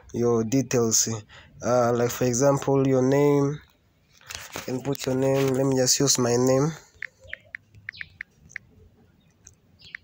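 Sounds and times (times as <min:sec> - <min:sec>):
phone keyboard tick beeps: 0:07.0 - 0:08.7.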